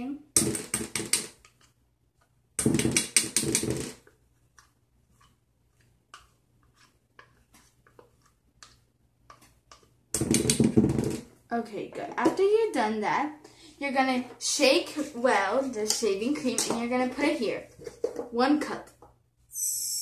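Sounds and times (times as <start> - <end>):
spatula scraping plastic cup: 3.3 - 9.9
faint clicks and taps: 4.0 - 10.0.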